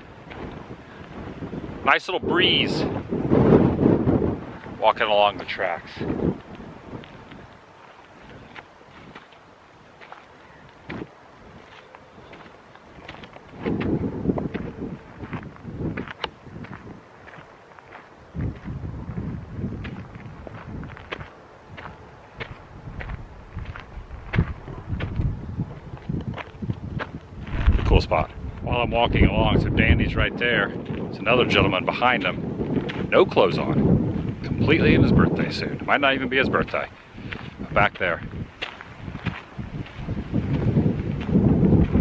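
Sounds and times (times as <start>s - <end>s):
wind buffeting microphone: 0.0s - 42.0s
footsteps on gravel: 0.1s - 1.6s, 4.2s - 29.2s, 30.5s - 42.0s.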